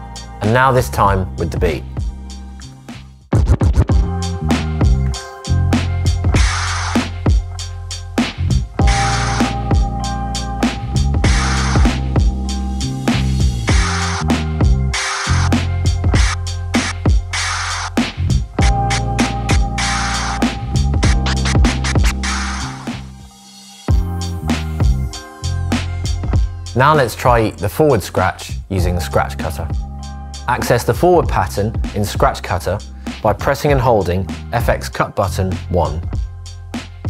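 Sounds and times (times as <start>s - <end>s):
music beat: 0.0s - 34.8s, 35.4s - 37.0s
vinyl scratching: 2.9s - 4.1s, 5.8s - 7.4s, 8.2s - 9.7s, 11.2s - 12.1s, 13.2s - 23.2s.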